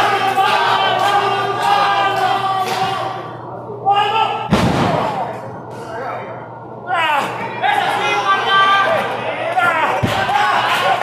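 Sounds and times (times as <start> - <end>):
voices shouting in a hall: 0.0 - 11.0.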